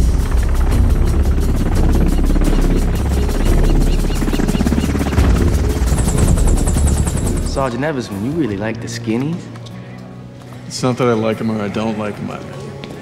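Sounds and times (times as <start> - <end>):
helicopter rotors chopping: 0.0 - 8.6
film score music: 0.0 - 13.0.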